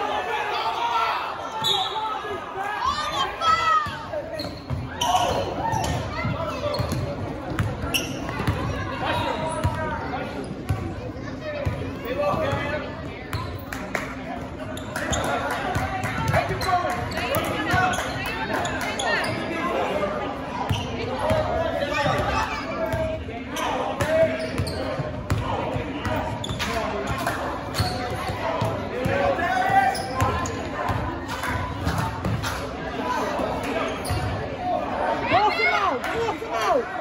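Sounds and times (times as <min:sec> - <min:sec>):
voices of players and crowd: 0:00.0 - 0:37.0.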